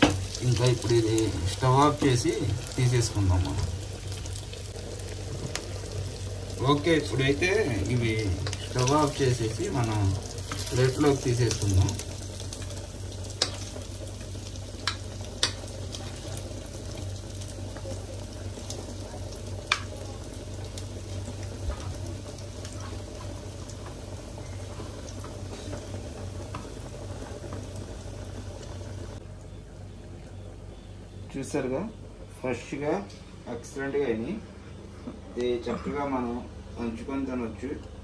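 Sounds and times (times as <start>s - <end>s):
fish sizzling in a pan: 0.0s - 29.2s.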